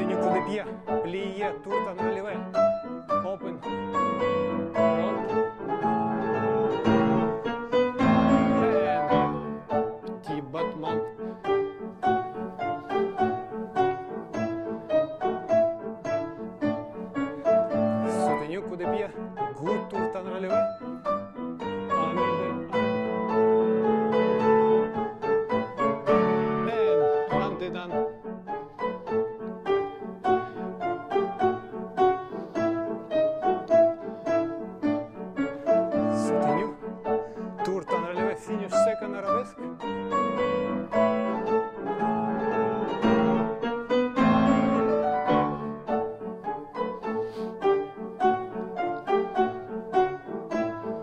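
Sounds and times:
classical piano piece: 0:00.0 - 0:51.0.

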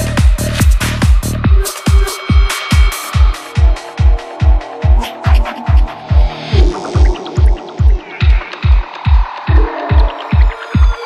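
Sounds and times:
kick drum: 0:00.0 - 0:11.0.

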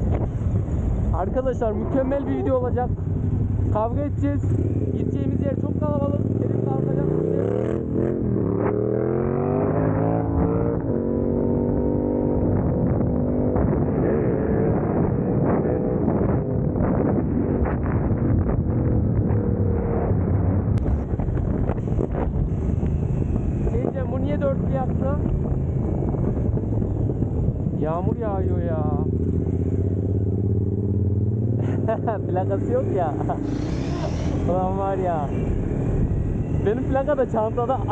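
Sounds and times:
motorcycle engine accelerating: 0:00.0 - 0:37.9.

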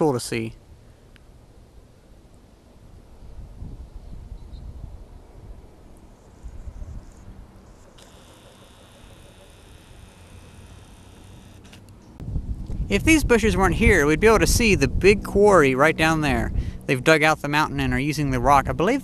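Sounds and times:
wind buffeting microphone: 0:02.9 - 0:05.8, 0:06.4 - 0:07.6, 0:12.2 - 0:16.9.

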